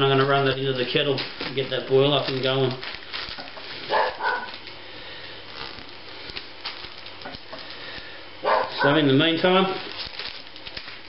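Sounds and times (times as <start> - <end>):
plastic bag rustling and crinkling: 0.0 - 11.0.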